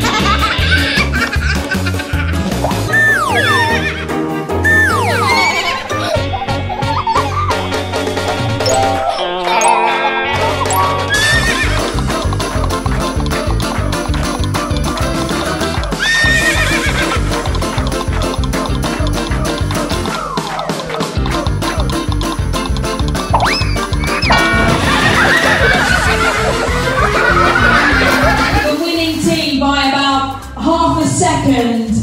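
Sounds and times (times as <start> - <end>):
horse whinnying: 2.9 - 4.1, 4.7 - 6.0, 11.1 - 12.0, 15.9 - 17.2, 23.4 - 25.7
background music with steady beat: 10.6 - 32.0
horse whinny: 11.1 - 12.0, 16.0 - 17.2.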